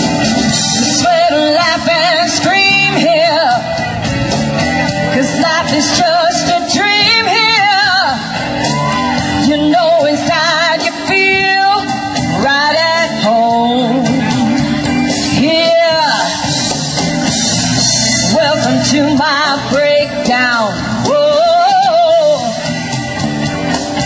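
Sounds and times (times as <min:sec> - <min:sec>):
loud rock backing music: 0:00.0 - 0:24.0
singer belting rock vocal: 0:00.0 - 0:24.0.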